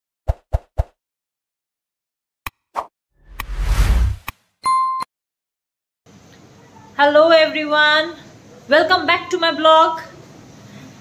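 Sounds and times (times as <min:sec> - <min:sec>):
whoosh with deep rumble: 0:03.2 - 0:04.2.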